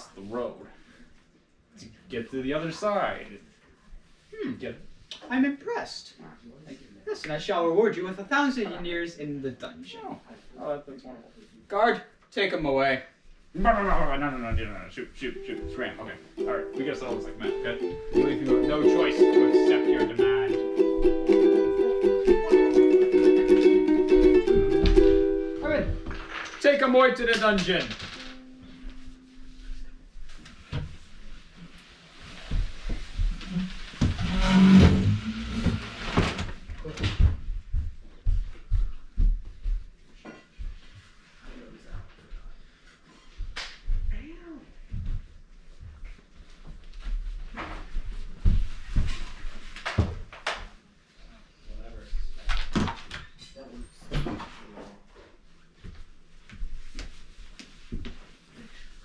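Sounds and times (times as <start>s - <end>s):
footsteps on wooden floor: 13.3s - 14.8s, 24.0s - 26.3s, 28.6s - 42.7s, 44.8s - 50.4s, 55.8s - 58.9s.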